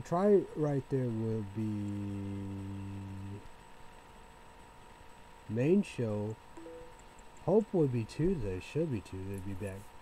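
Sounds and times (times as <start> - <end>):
thin steady tone: 5.7 - 7.6.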